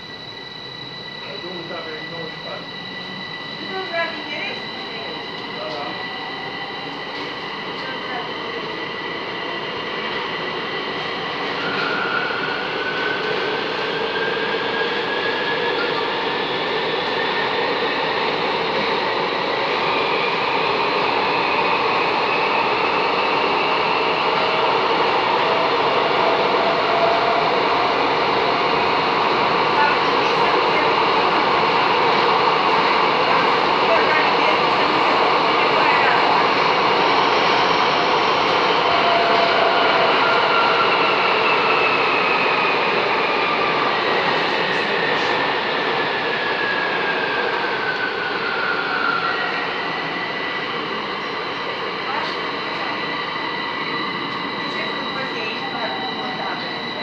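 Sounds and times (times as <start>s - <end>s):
train rushing through tunnel: 0.0s - 57.0s.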